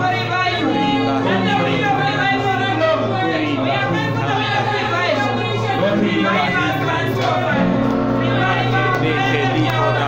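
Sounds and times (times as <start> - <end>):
electronic keyboard chords: 0.0 - 10.0
voice over microphone: 0.0 - 10.0.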